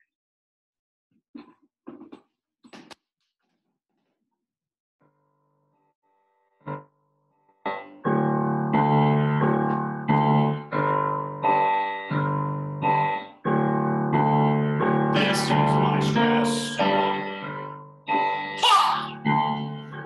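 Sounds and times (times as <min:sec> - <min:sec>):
piano playing repeated chords: 0:05.6 - 0:20.0.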